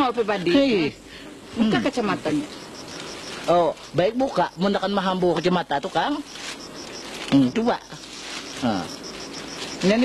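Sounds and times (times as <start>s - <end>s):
insect chirping: 0.0s - 10.0s
voices: 0.0s - 10.0s.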